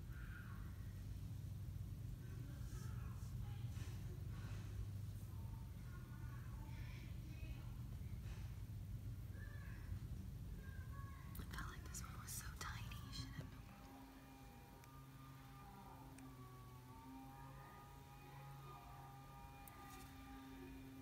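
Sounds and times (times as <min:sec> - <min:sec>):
faint steady tones: 0:00.0 - 0:21.0
faint whispering: 0:10.6 - 0:13.9.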